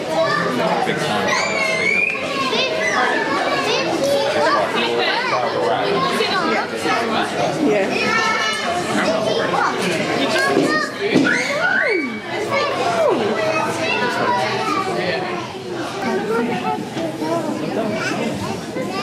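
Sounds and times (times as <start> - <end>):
children chattering and calling: 0.0 - 19.0.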